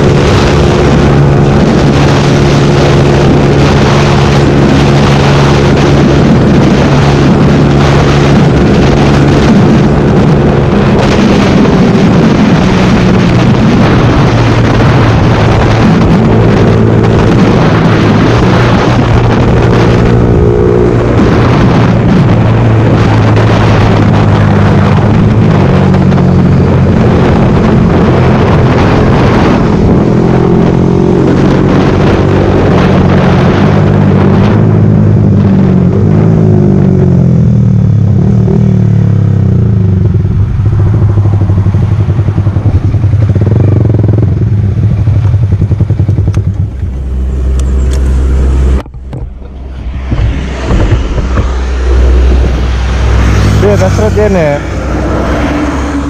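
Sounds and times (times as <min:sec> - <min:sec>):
motorcycle engine running: 0:00.0 - 0:56.0.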